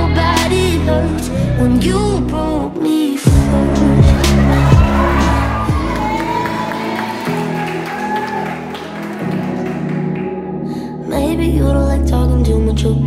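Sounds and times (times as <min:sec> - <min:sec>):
slow instrumental pop song: 0:00.0 - 0:13.0
strong bass hits: 0:03.3 - 0:06.0.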